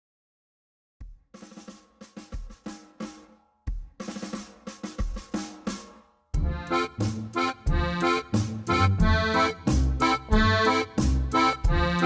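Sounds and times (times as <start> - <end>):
drum kit groove: 1.0 - 12.0
accordion: 6.4 - 12.0.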